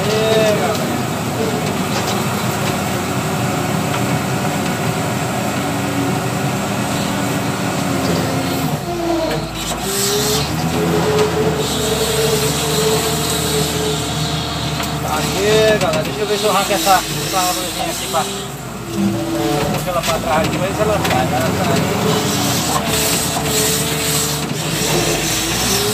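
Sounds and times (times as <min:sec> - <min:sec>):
diesel engine under load: 0:00.0 - 0:25.9
bucket pushing brush: 0:07.5 - 0:25.9.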